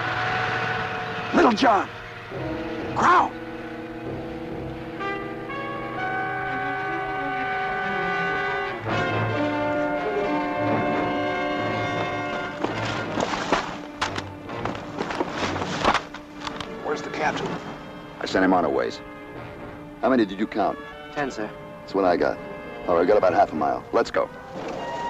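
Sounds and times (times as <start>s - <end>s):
orchestral brass chords: 0.0s - 25.0s
rustling: 12.0s - 16.4s.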